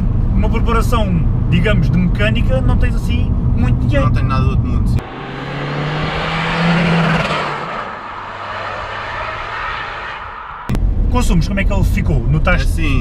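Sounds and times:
diesel car driving past: 0:05.0 - 0:11.0.

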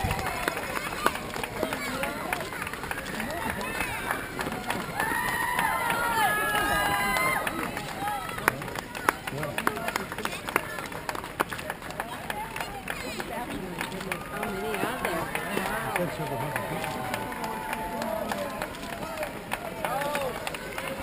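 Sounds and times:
runners' footsteps on asphalt: 0:00.0 - 0:21.0.

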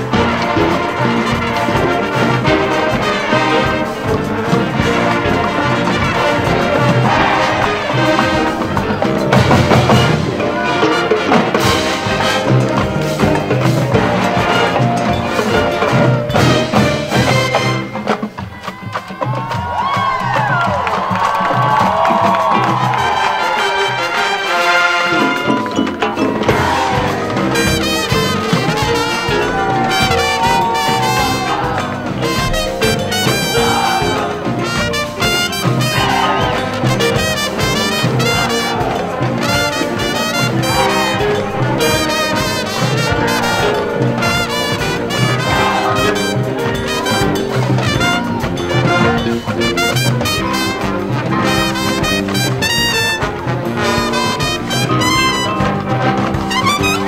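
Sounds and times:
brass band playing: 0:00.0 - 0:57.0.

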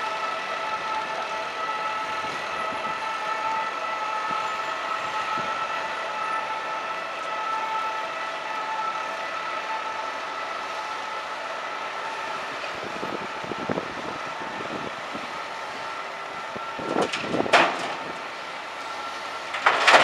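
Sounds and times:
excavator engine and hydraulics whine: 0:00.0 - 0:20.0.

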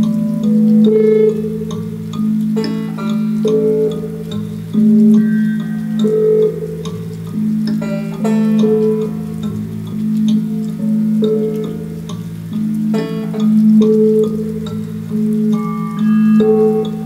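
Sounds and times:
plucked string notes: 0:00.0 - 0:17.0.

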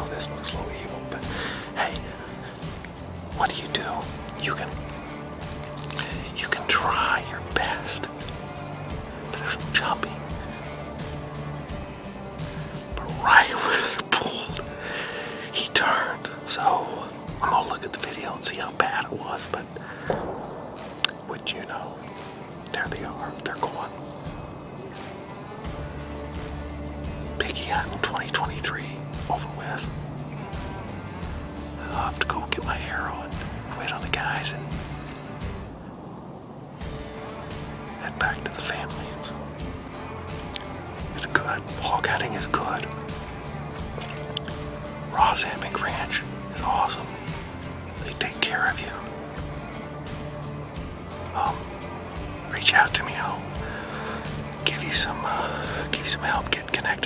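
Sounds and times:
man whispering: 0:00.0 - 0:05.1, 0:05.8 - 0:11.0, 0:12.9 - 0:20.4, 0:21.0 - 0:24.0, 0:27.3 - 0:30.5, 0:31.8 - 0:35.1, 0:37.9 - 0:39.4, 0:41.2 - 0:43.1, 0:44.1 - 0:49.8, 0:51.3 - 0:57.0
soft background music: 0:00.0 - 0:57.0
sharp mouth clicks: 0:05.6 - 0:06.2, 0:44.0 - 0:44.7.

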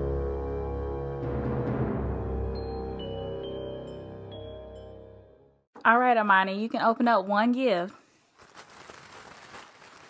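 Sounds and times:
padded envelope crinkling: 0:08.2 - 0:10.0.

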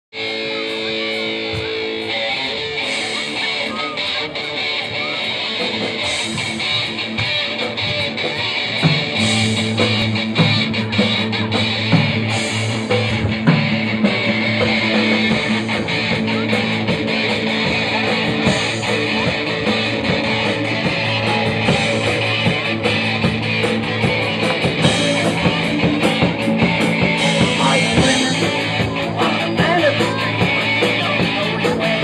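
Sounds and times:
electric guitar riff: 0:00.1 - 0:32.0
live rock band playing: 0:00.1 - 0:32.0.

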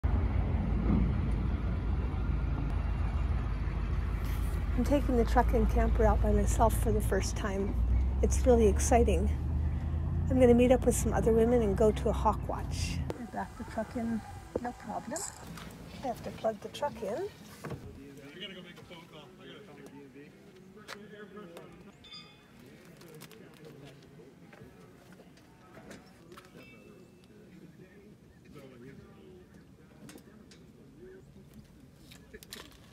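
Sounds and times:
pickup truck engine rumbling: 0:00.0 - 0:16.6
faint indistinct voices: 0:10.6 - 0:32.9.

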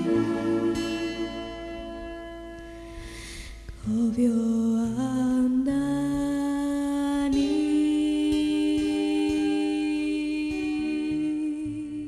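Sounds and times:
person humming a long note: 0:00.0 - 0:01.8
plucked acoustic guitar: 0:00.0 - 0:03.0
low bass notes: 0:00.0 - 0:03.1.

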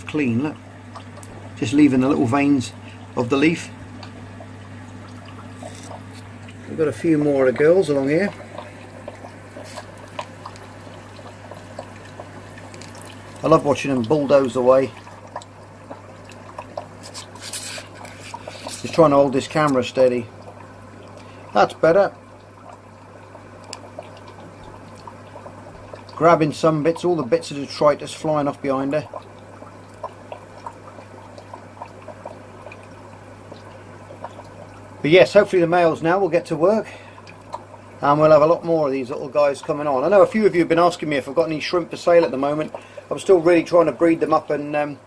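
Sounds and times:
faint trickle of water: 0:00.0 - 0:45.0
low hum of filtration equipment: 0:00.0 - 0:45.0.

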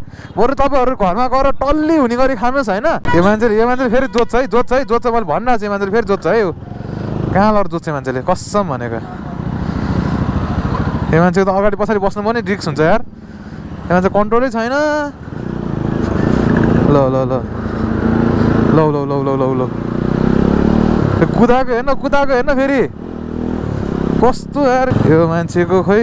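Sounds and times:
motorcycle engine and road rumble: 0:00.0 - 0:26.0.

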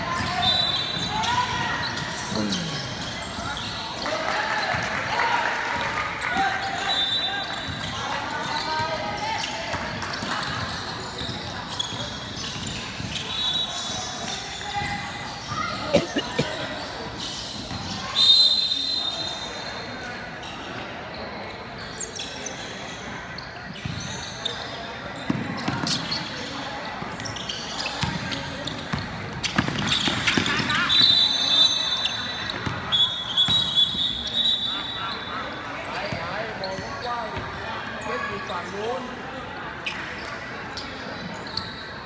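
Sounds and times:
people talking and calling out: 0:00.0 - 0:20.5
high whistle blasts: 0:18.1 - 0:19.3, 0:32.9 - 0:35.1.

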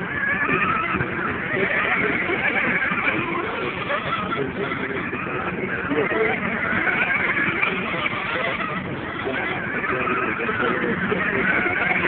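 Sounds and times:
radio-controlled cars whining: 0:00.0 - 0:12.0.

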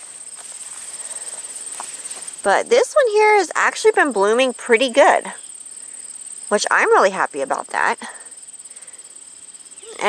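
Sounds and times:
soft footsteps or rustles: 0:00.0 - 0:02.5
high-pitched insect trill: 0:00.0 - 0:10.0.

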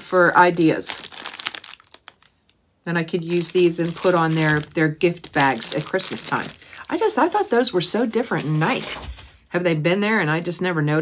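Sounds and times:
plastic bags crinkling: 0:00.0 - 0:09.4.

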